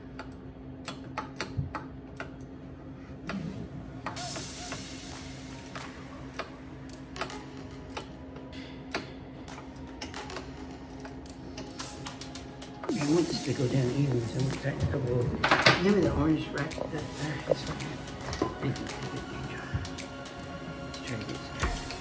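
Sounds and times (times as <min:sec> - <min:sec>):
quiet background music: 0:00.0 - 0:22.0
steady hum: 0:00.0 - 0:22.0.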